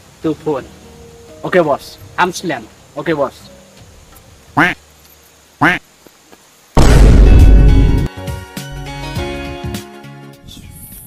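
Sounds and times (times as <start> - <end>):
duck quacks: 4.6 - 4.8, 5.6 - 5.8.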